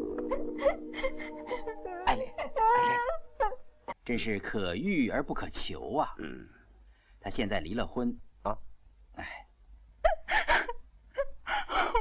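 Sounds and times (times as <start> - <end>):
woman sobbing: 0.1 - 3.6, 10.0 - 12.0.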